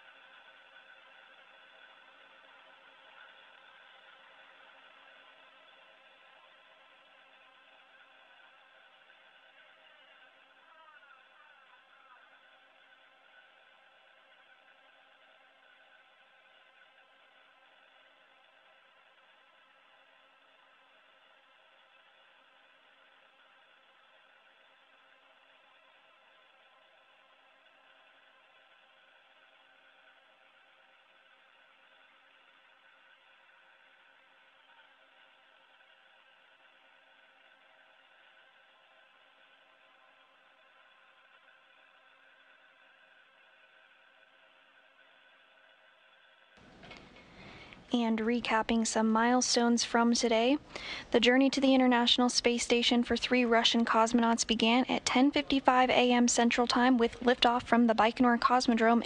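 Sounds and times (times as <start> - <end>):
ventilation fans humming: 0.0 - 59.0.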